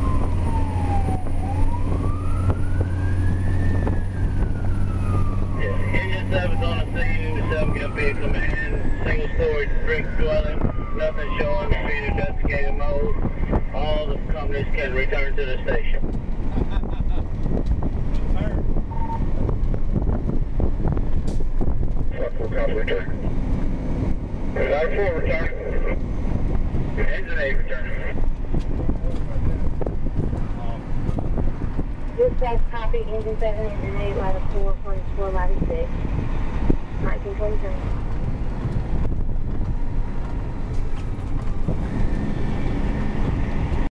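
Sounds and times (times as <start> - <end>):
road noise: 0.0 - 43.9
truck diesel engine rumbling: 0.0 - 43.9.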